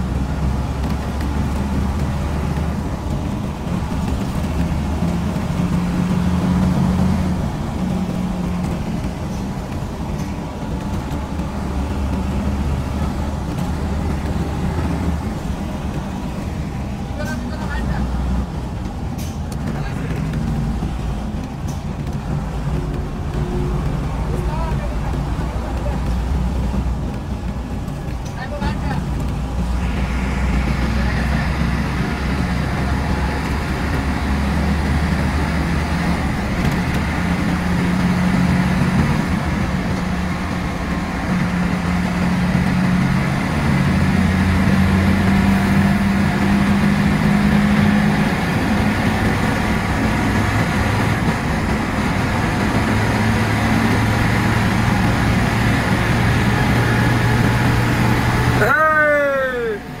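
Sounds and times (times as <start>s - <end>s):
coach engine humming: 0.0s - 60.0s
road noise: 0.0s - 60.0s.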